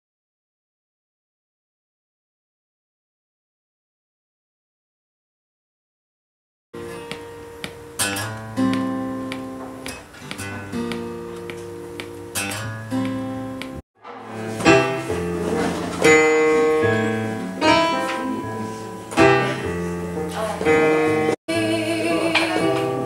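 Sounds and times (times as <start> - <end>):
electronic keyboard chords: 6.8 - 23.0.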